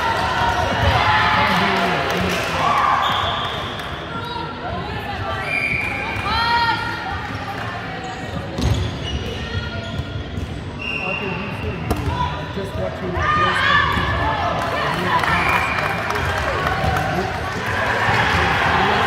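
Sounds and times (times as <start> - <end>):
shoe squeaks: 8.0 - 11.7.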